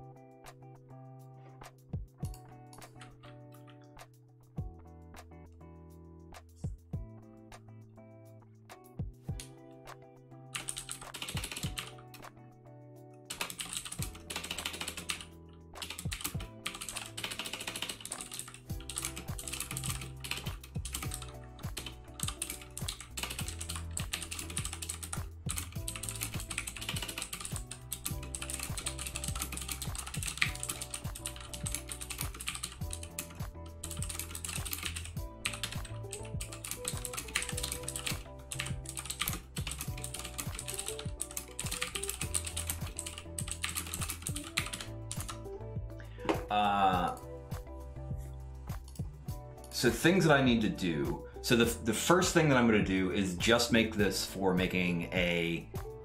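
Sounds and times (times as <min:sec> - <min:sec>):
background music: 0:00.0 - 0:56.0
computer keyboard typing: 0:10.5 - 0:12.3, 0:13.3 - 0:45.5.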